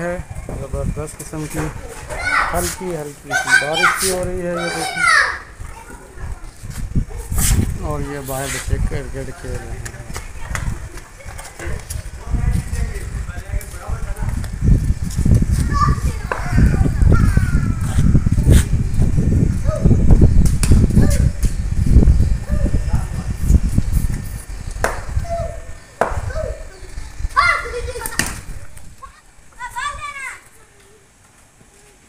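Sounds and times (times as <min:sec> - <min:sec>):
wind buffeting microphone: 0:00.0 - 0:30.4
children shouting: 0:01.9 - 0:06.5, 0:15.6 - 0:18.3, 0:25.2 - 0:31.1
sharp knocks: 0:24.8 - 0:25.2, 0:26.0 - 0:26.3.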